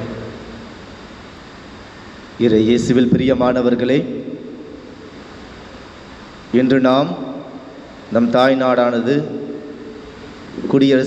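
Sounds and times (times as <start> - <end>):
room noise hiss and rumble: 0.0 - 11.0
man's voice: 2.4 - 4.1.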